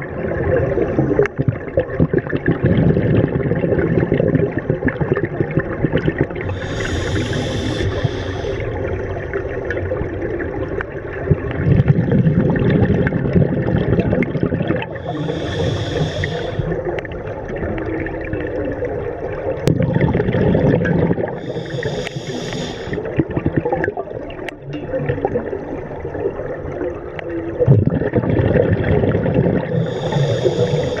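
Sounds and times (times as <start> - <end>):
rumble of exhaled bubbles: 0.0 - 31.0
regulator inhalation hiss: 6.5 - 8.7, 15.0 - 16.8, 21.3 - 23.0, 29.7 - 31.0.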